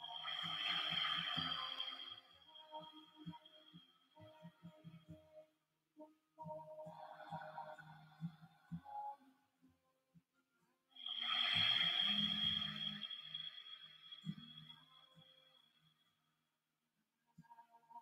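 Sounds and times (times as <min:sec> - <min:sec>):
bright bell-like tone: 0:00.0 - 0:03.9, 0:11.1 - 0:15.5
calm meditation music: 0:00.0 - 0:16.0.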